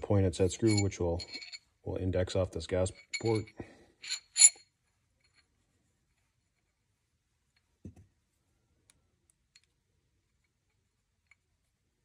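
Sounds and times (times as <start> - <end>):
light metallic clinks: 2.9 - 4.6.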